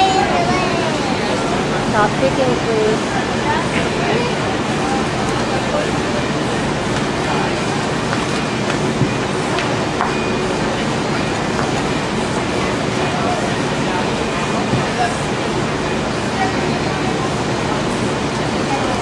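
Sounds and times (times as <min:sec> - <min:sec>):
faint voices: 0:00.0 - 0:19.0.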